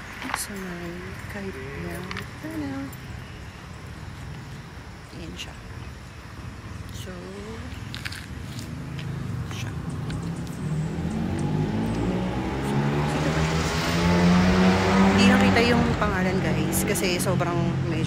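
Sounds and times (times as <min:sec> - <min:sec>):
vehicle engine approaching: 0:07.4 - 0:18.0.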